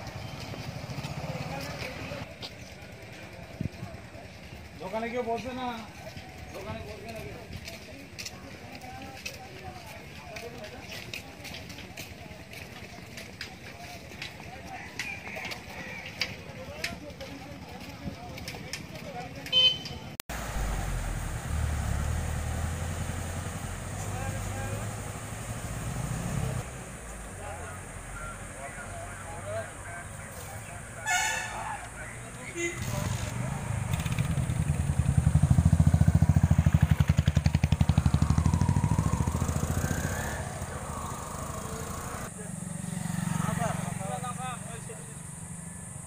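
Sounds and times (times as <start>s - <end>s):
distant voices talking: 0.0s - 46.0s
truck engine low rumble: 20.3s - 46.0s
short horn toot: 31.0s - 31.8s.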